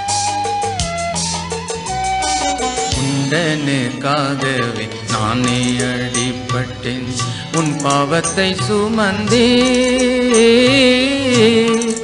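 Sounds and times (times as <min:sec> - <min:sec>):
sustained instrumental accompaniment: 0:00.0 - 0:12.0
solo voice singing with vibrato: 0:03.0 - 0:12.0.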